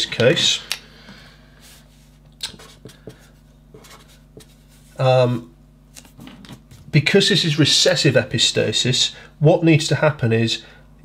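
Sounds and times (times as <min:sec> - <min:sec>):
marker writing on paper: 0:02.5 - 0:04.9.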